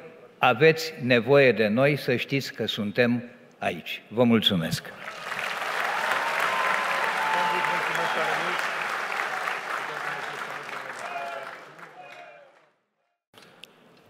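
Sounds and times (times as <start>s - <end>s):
large audience applauding: 5.0s - 12.7s.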